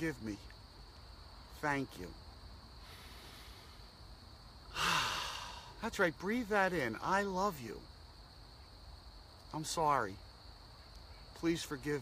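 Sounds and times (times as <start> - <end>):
man breathing in deeply: 2.8 - 4.0, 4.7 - 5.8.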